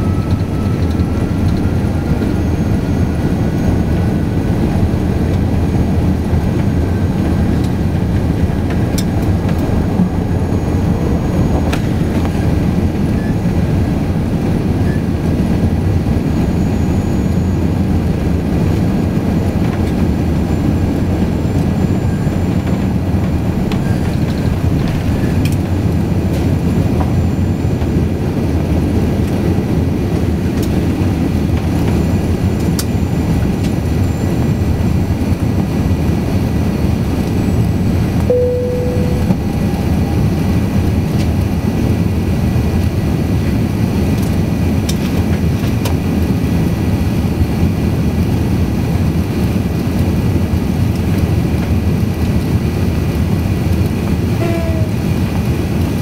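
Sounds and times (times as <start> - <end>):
short tone: 0.0 - 3.9, 10.2 - 12.5, 38.3 - 40.7
jet engine and airflow noise: 0.0 - 56.0.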